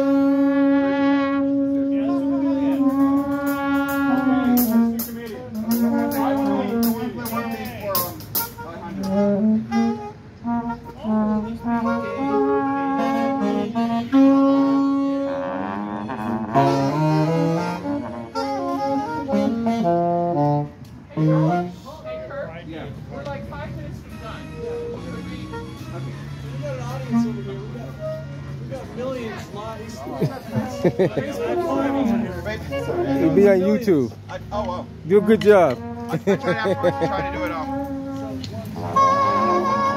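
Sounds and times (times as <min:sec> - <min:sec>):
brass band playing: 0:00.0 - 0:22.3, 0:23.4 - 0:39.9.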